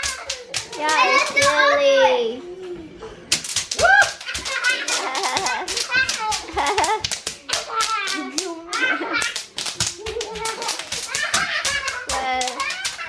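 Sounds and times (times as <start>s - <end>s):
children squealing and shouting: 0.0s - 2.4s
bubble wrap popping: 3.3s - 13.0s.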